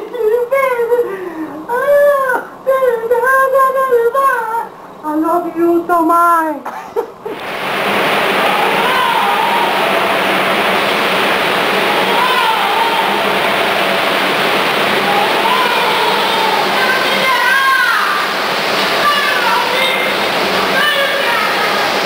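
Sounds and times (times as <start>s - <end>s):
loud rushing roar with low hum: 7.4s - 22.0s
drawn-out shouted voice calls: 8.0s - 22.0s.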